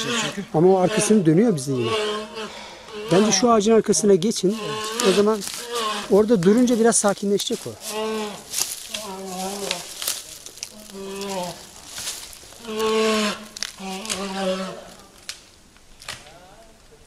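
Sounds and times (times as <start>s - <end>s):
bear bawling: 0.0s - 3.6s, 4.4s - 7.0s, 7.8s - 10.0s, 10.7s - 11.8s, 12.5s - 15.2s.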